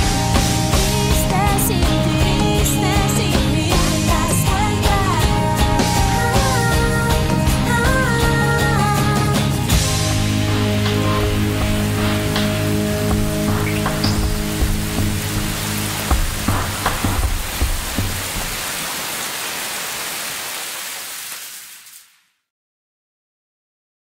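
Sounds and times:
pop-rock song chord: 0.0 - 17.3
drum hits: 9.7 - 18.7.

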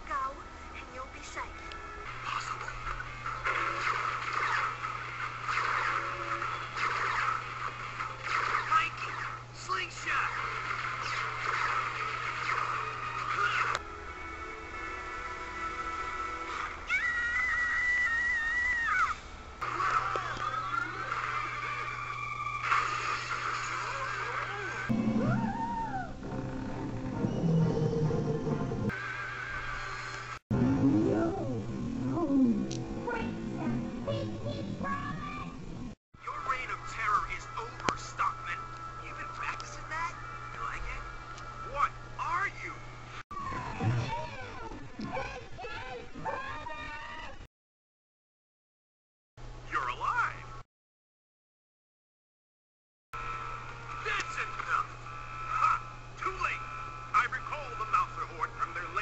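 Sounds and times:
cartoon music: 24.9 - 28.9
warbling high tone: 24.9 - 28.9
cartoon growling voice: 30.5 - 36.0
steady low hum: 30.5 - 45.7.

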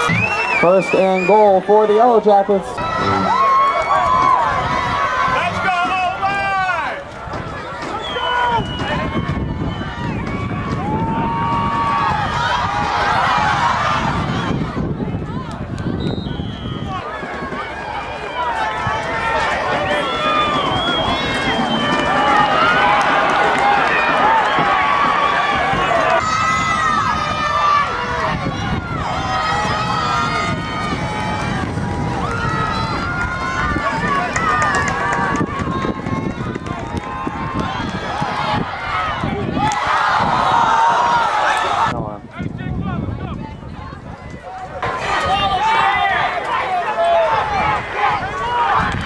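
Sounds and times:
spectators talking and calling out: 0.0 - 49.0.

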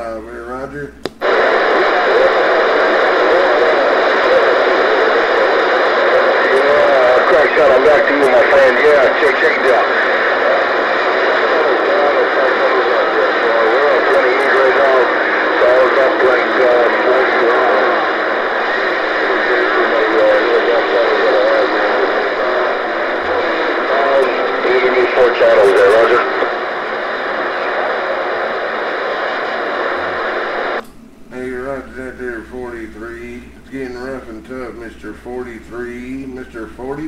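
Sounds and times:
radio static hiss: 0.0 - 37.0
garbled radio voice: 1.2 - 30.8.

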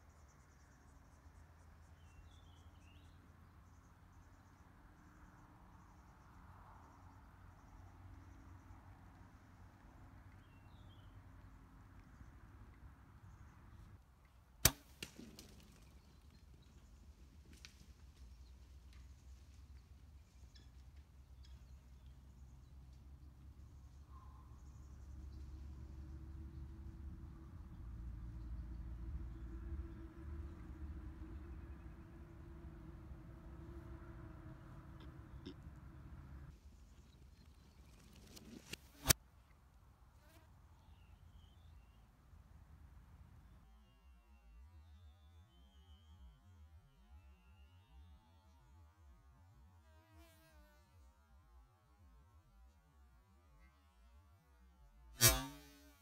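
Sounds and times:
bow string snap: 14.6 - 15.6, 55.2 - 55.6
arrow striking crack: 14.6 - 15.8, 38.2 - 39.2, 55.2 - 55.7
faint insect buzz: 55.2 - 56.0.

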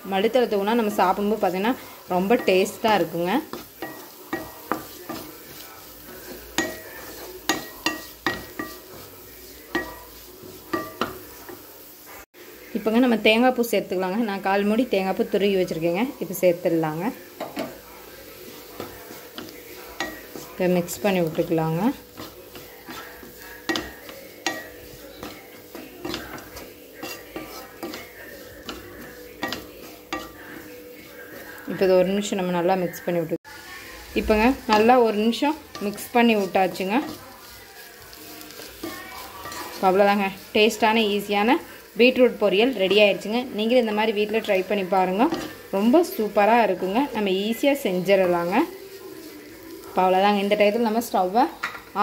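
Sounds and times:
spatula scraping frying pan: 0.0 - 12.3, 15.6 - 32.3, 33.6 - 52.0
vegetables sizzling in oil: 0.0 - 52.0.

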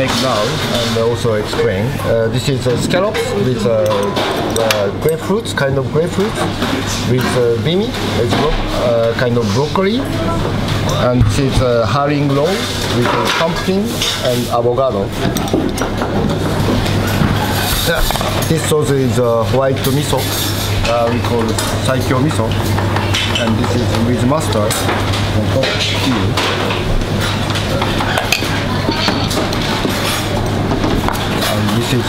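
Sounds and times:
dishes and utensils clinking: 0.0 - 32.0.

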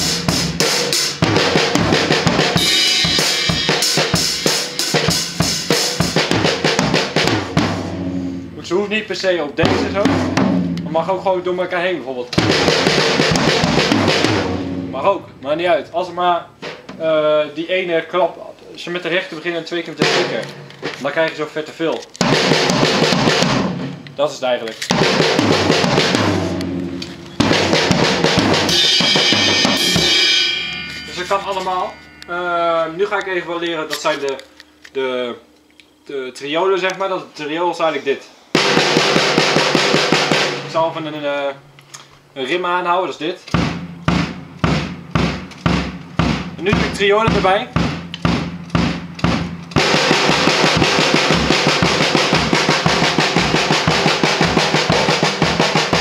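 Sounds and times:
drum kit fill: 0.0 - 11.4, 12.3 - 17.4, 20.0 - 21.3, 22.2 - 34.3, 38.5 - 41.2, 43.5 - 56.0
cymbal ringing: 2.5 - 6.1, 25.8 - 35.5.

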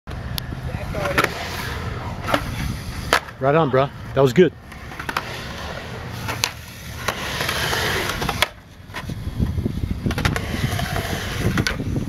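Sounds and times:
skateboard wheels rolling on concrete: 0.1 - 12.0.

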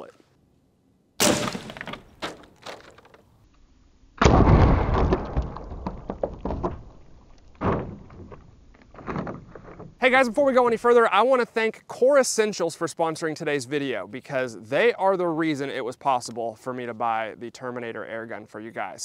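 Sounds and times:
air rifle shot: 1.2 - 1.8.

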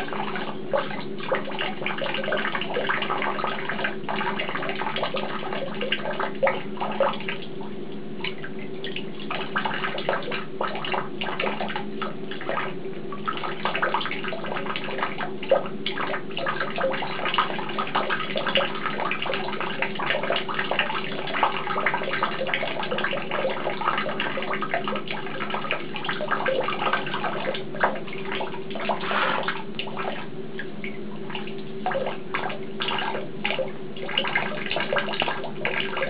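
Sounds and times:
steady low hum: 0.0 - 36.0
tap water splashing into basin: 8.2 - 36.0.

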